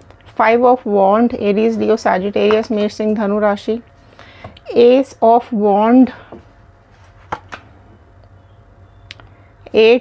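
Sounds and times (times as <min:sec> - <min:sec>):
cards tapped onto table: 0:07.3 - 0:07.6.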